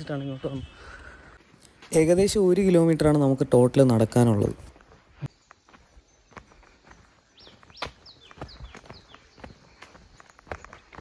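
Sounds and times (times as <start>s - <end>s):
footsteps on dirt track: 0.0s - 11.0s.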